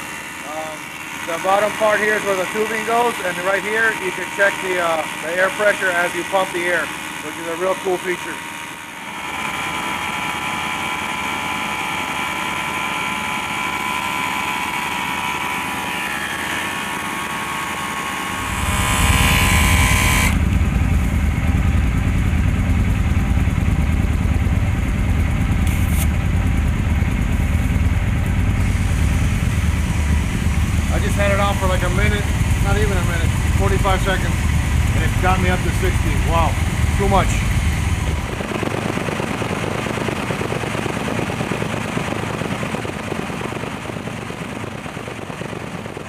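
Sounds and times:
air compressor running with whine: 0.0s - 46.0s
brief air hiss: 25.7s - 26.1s.

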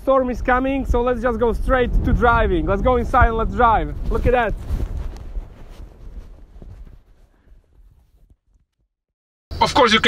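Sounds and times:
wind rumbling on microphone: 0.0s - 8.4s.

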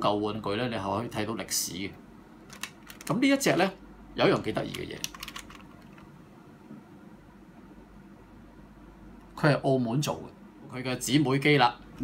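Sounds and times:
faint room noise: 0.0s - 12.0s
plastic toy clicking: 2.5s - 3.1s, 4.7s - 5.6s.

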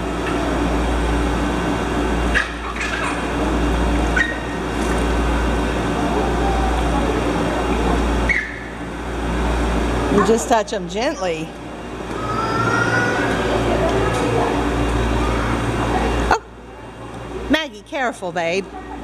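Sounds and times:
low pump hum: 0.0s - 19.0s.

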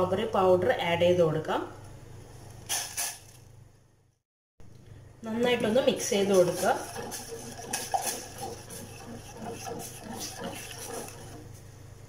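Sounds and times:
metal spoon stirring in a saucepan: 5.5s - 11.6s.

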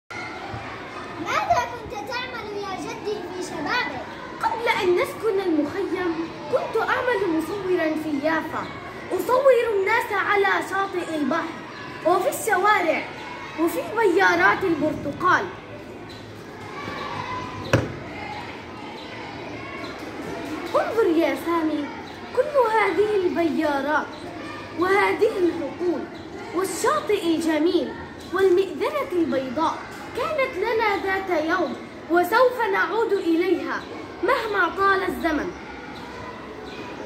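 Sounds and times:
faint voices murmuring: 0.1s - 37.0s
girls talking: 0.1s - 37.0s.

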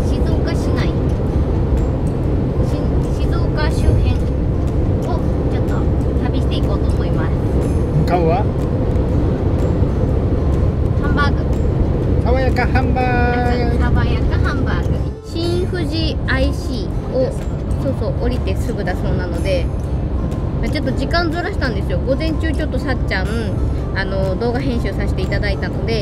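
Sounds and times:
van road and engine rumble: 0.0s - 26.0s.

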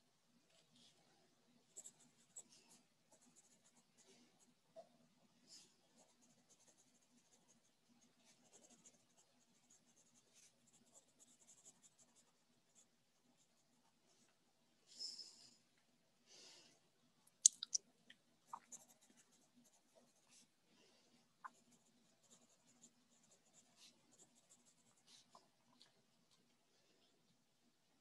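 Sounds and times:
handwriting scratching on paper: 8.2s - 12.9s.

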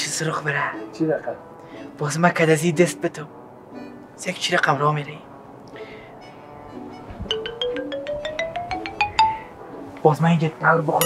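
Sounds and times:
tone climbing in pitch: 6.7s - 9.5s.

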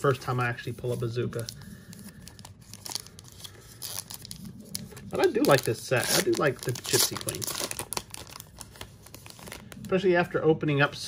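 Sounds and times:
foil wrapper crinkling: 0.5s - 10.0s
foil wrapper tearing: 1.3s - 9.8s.

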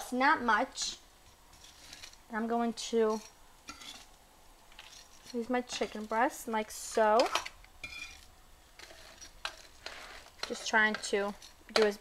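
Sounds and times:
metal tongs clicking on pan: 6.9s - 8.2s, 8.8s - 12.0s.

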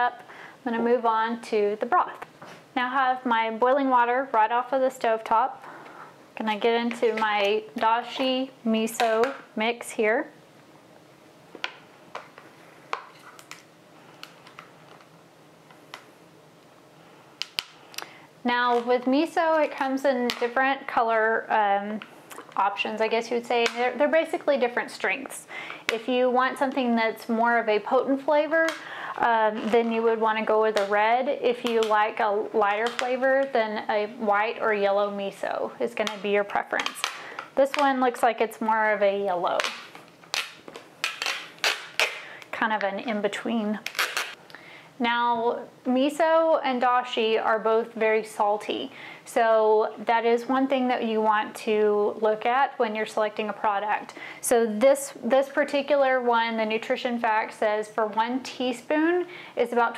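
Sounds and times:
plastic packaging crackling: 11.6s - 16.1s, 39.2s - 44.4s
sharp plastic snaps: 17.4s - 18.1s, 39.6s - 42.2s.

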